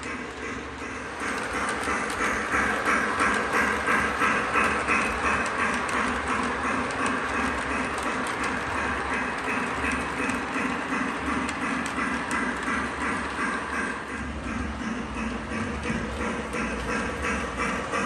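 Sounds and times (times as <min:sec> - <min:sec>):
low running hum: 0:00.0 - 0:18.0
model train clattering on track: 0:00.0 - 0:18.0.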